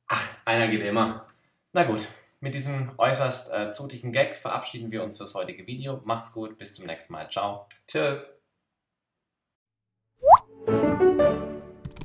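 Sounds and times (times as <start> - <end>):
rising plop sound effect: 10.2 - 10.5.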